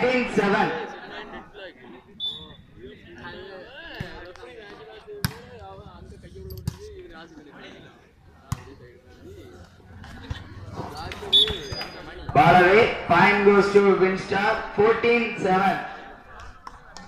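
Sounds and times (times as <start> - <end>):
people talking and calling: 0.0 - 17.0.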